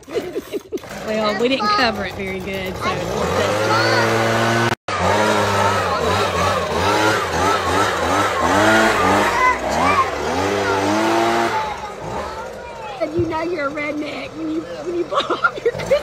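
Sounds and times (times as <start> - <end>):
leaf blower running: 0.0 - 16.0
voices: 0.0 - 16.0.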